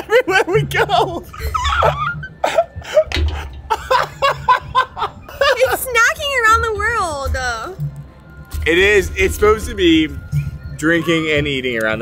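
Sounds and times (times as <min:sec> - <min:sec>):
man and woman laughing: 0:00.0 - 0:05.9.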